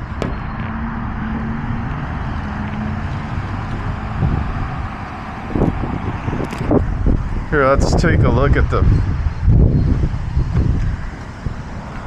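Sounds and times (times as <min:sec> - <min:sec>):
road traffic roar: 0:00.0 - 0:12.0.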